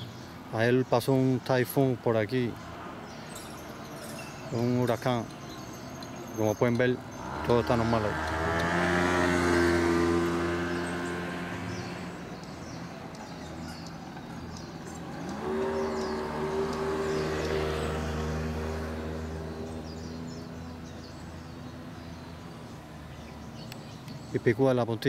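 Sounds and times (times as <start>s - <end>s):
motor scooters passing: 0.0s - 24.7s.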